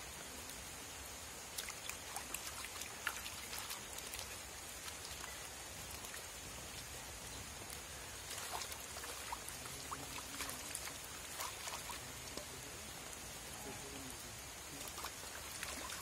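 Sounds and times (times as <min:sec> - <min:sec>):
water splashing in a metal bowl: 0:01.5 - 0:06.2, 0:08.2 - 0:12.6, 0:14.8 - 0:16.0.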